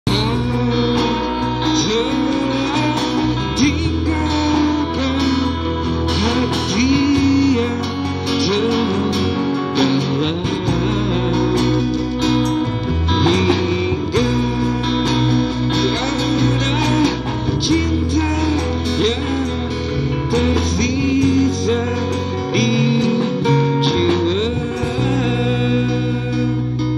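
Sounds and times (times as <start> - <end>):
guitar accompaniment: 0.0 - 26.9
man singing into microphone: 0.0 - 26.9.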